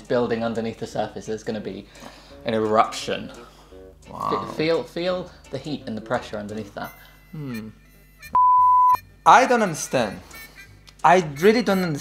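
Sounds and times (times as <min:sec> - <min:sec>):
censor bleep: 0:08.4 - 0:09.0.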